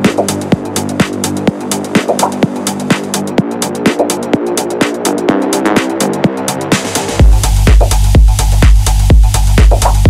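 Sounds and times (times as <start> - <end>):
electronic kick drum: 0.0 - 10.0
synth bass and pads: 0.0 - 10.0.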